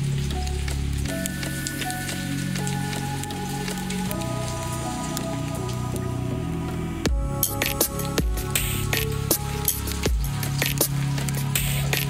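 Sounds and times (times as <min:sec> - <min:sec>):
chill electronic music: 0:00.0 - 0:12.0.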